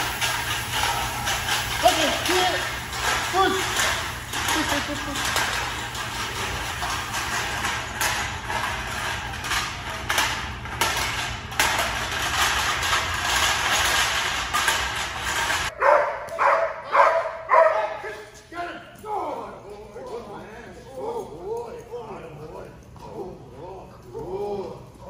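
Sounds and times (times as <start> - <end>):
steady hiss: 0.0 - 7.4
dog barking: 15.8 - 18.2.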